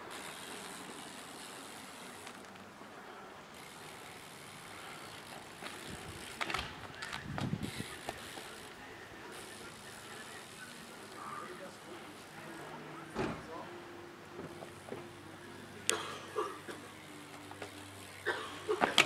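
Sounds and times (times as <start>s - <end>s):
bike tyres rolling on asphalt: 0.0s - 19.0s
bike wheels thudding on road: 3.6s - 8.7s, 17.3s - 19.0s.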